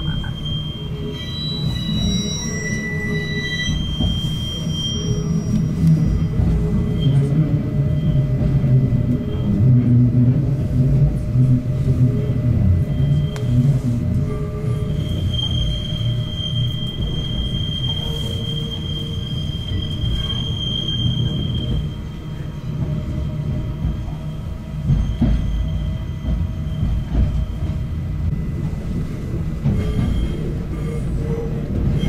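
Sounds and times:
high wheel squeal: 0:00.0 - 0:09.6, 0:12.3 - 0:27.8, 0:29.6 - 0:32.0
railcar wheels rumbling on track: 0:00.0 - 0:32.0.

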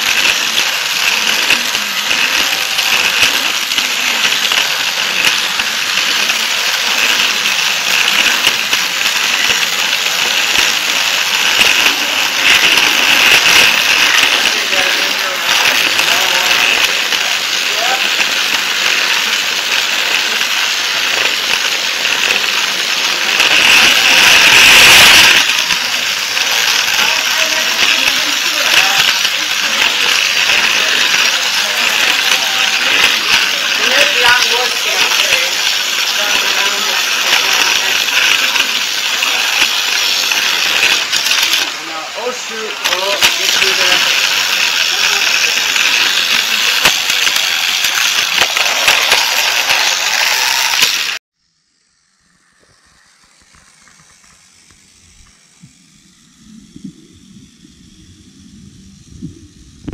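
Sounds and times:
toy train rattling on plastic track: 0:00.0 - 0:56.3.

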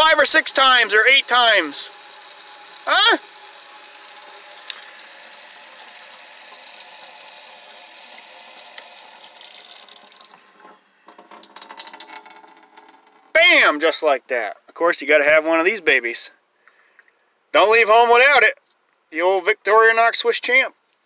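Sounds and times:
water running into a steel sink: 0:00.0 - 0:13.3
thin trickle of water: 0:00.0 - 0:13.4.

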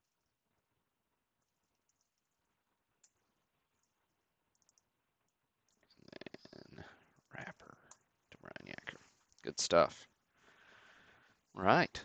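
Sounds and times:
keyboard and mouse clicks: 0:03.0 - 0:04.9.

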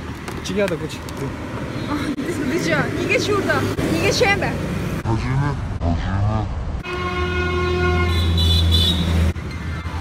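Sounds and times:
horn long blast: 0:06.4 - 0:09.1.

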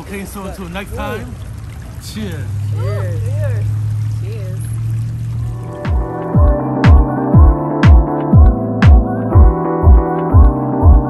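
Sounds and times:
electronic music with bass sweeps: 0:05.4 - 0:11.0.

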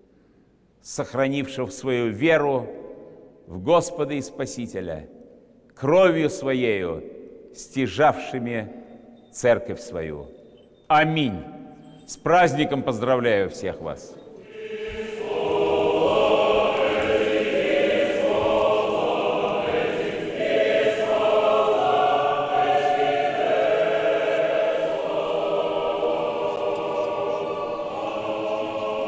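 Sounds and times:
church choir singing unaccompanied: 0:12.2 - 0:29.0.

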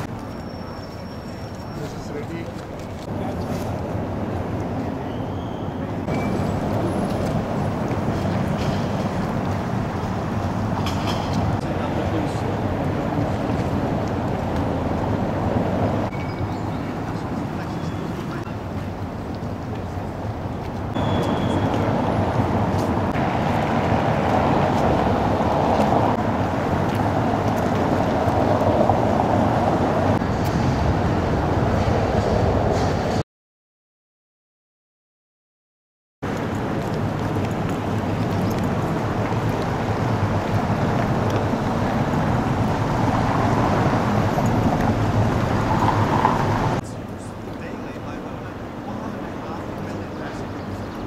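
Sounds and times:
distant voices: 0:00.0 - 0:30.2, 0:36.3 - 0:51.0
traffic hum: 0:00.0 - 0:33.2, 0:36.2 - 0:51.0.

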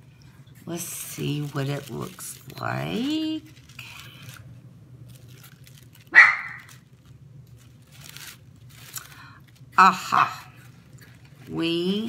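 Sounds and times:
tissue paper rustling: 0:00.6 - 0:12.0
dog barking: 0:06.1 - 0:06.7.

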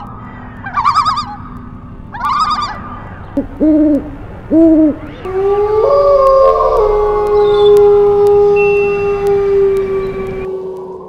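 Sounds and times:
dogs howling: 0:05.1 - 0:11.0.

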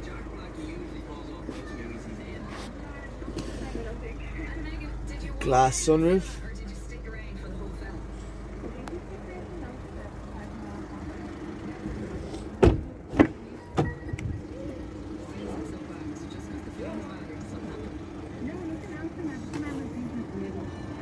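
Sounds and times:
low background hum: 0:00.0 - 0:21.0
car door shutting: 0:12.3 - 0:14.4
car door clunks: 0:12.4 - 0:14.4.

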